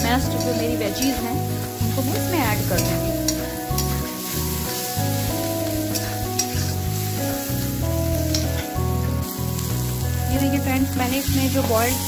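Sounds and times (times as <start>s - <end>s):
background music: 0.0s - 12.0s
food sizzling in oil: 0.0s - 12.0s
metal spatula scraping pan: 0.2s - 7.1s.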